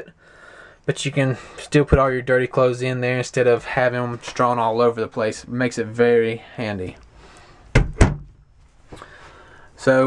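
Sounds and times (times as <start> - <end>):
closet door knocking shut: 7.7 - 8.4.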